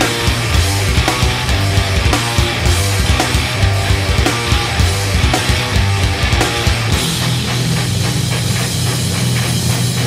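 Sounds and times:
distorted electric guitar: 0.0s - 10.0s
drum kit playing fast rhythm: 0.0s - 10.0s.

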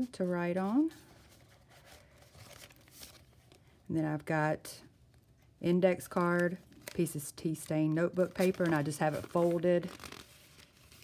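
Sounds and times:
paper pages rustling: 0.6s - 3.6s, 6.2s - 11.0s.

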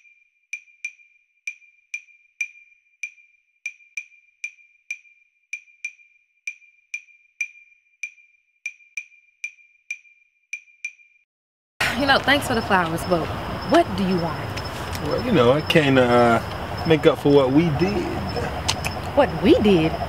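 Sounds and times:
wood block percussion clicks: 0.6s - 11.1s.

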